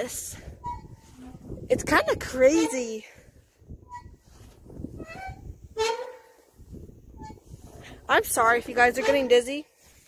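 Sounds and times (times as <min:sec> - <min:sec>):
playground swing squeaking: 0:00.1 - 0:03.1, 0:03.7 - 0:09.7.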